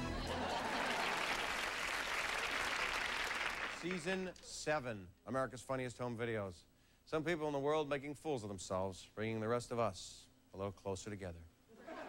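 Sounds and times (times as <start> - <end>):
audience applauding: 0.0 - 4.1.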